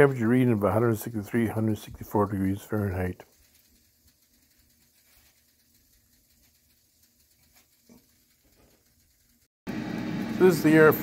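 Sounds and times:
air fryer whirring: 1.6s - 11.0s.

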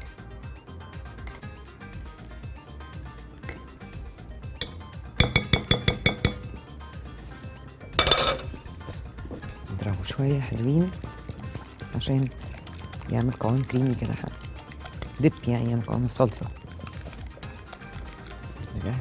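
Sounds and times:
background music: 0.0s - 19.0s
metal utensil clinking on glass bowl: 3.5s - 6.6s, 8.0s - 9.8s.

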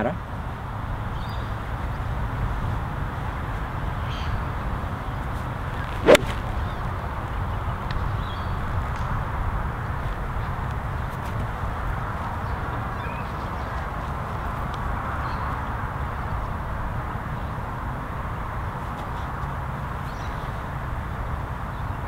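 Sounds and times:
golf club striking ball: 5.9s - 6.7s.

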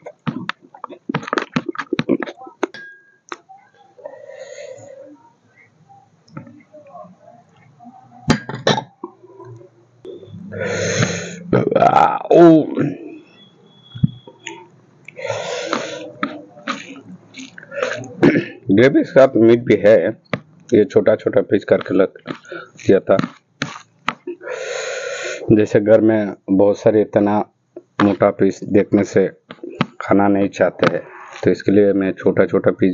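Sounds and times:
glass bowl clinking: 2.7s - 3.3s
loud burp: 10.1s - 13.1s, 15.2s - 18.6s
man speaking: 10.4s - 13.2s, 15.2s - 23.4s, 25.4s - 32.9s
breathy hiss through mouth: 10.5s - 11.5s, 15.2s - 16.1s, 24.4s - 25.5s.

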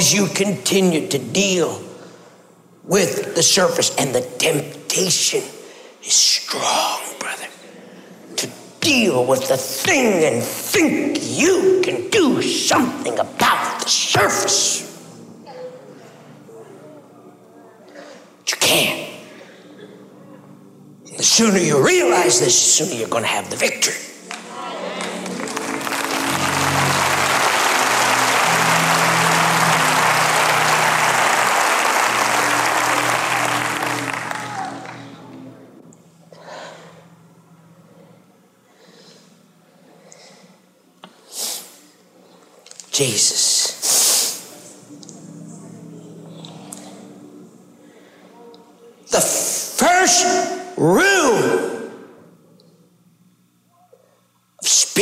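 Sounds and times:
man shouting in echoing hall: 8.8s - 15.0s, 49.1s - 52.2s, 54.6s - 55.0s
audience applauding: 24.3s - 35.3s.

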